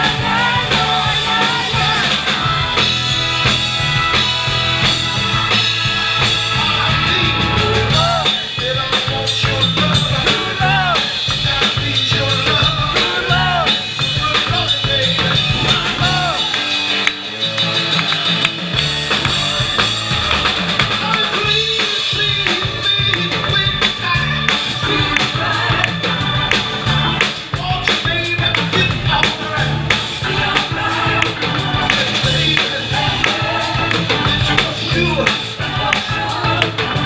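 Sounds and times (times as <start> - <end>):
drum kit: 0.0 - 37.0
organ playing: 0.0 - 37.0
man singing into microphone: 7.1 - 16.5, 21.0 - 26.0, 27.5 - 36.8.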